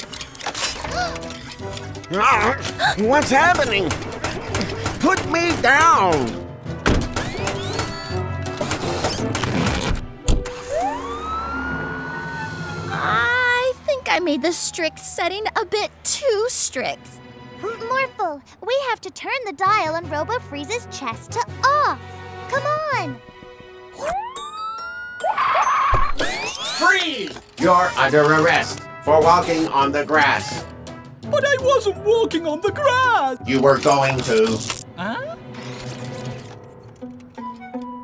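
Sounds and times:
cartoon background music: 0.2s - 38.0s
siren winding up: 10.4s - 13.3s, 24.0s - 28.7s.

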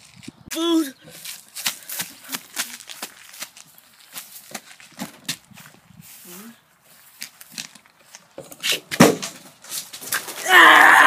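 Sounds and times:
footsteps on dry dirt: 0.0s - 8.4s.

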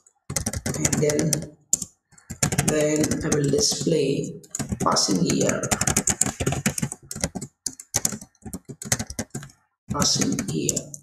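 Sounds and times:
typing on computer keyboard: 0.0s - 11.0s.

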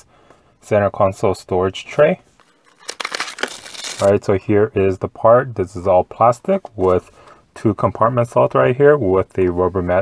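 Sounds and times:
packaging rustling and crinkling: 2.6s - 4.2s.

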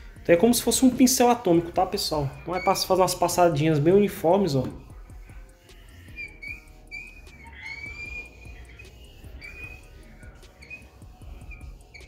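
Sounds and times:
felt squeaking on glass: 0.4s - 12.0s.

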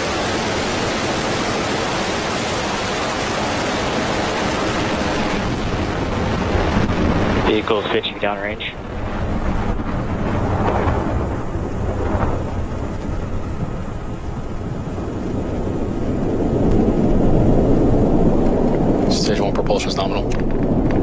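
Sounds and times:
rocket engines deep rumble: 0.0s - 21.0s.

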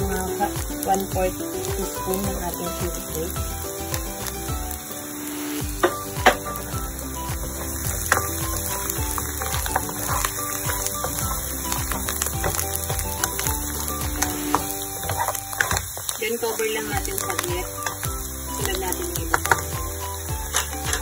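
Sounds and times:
background music with steady beat: 0.0s - 21.0s
ribs sizzling in a wok: 0.0s - 21.0s.

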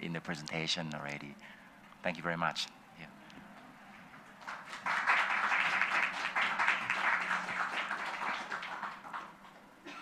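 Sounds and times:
audience applauding: 4.4s - 9.6s.

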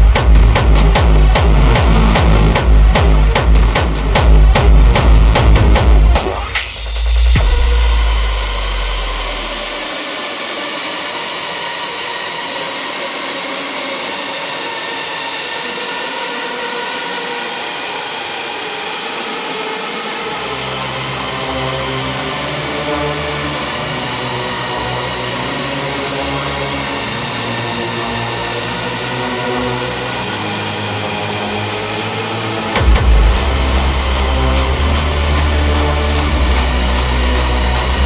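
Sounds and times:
deep bass notes: 0.0s - 9.9s, 32.7s - 38.0s.

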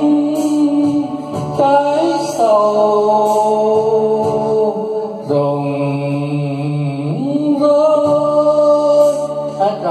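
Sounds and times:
man singing into a microphone: 0.0s - 9.9s
sustained backing music: 0.0s - 9.9s.

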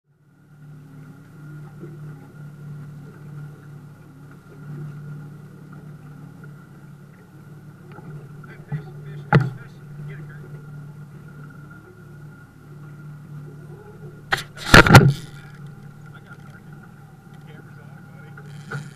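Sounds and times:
outboard motor humming: 0.1s - 18.9s.

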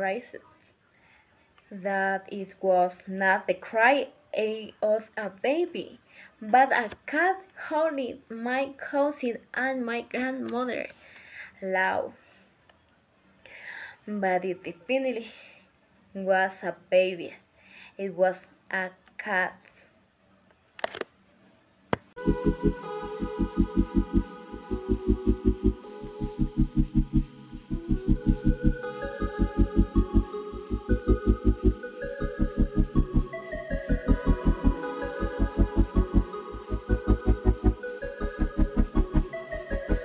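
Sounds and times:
rapid repeated bass notes: 22.2s - 40.0s
stepping melody: 22.2s - 40.0s.

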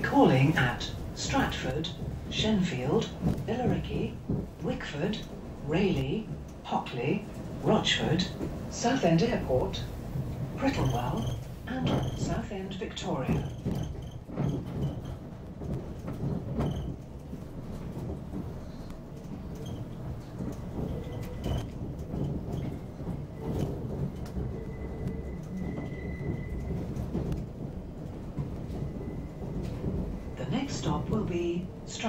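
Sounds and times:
faint clicks over rails: 0.0s - 32.0s
train wheels rumbling on track: 0.0s - 32.0s.

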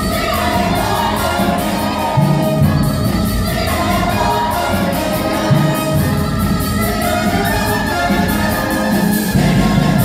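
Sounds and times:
cast singing in chorus: 0.0s - 10.0s
musical accompaniment: 0.0s - 10.0s.

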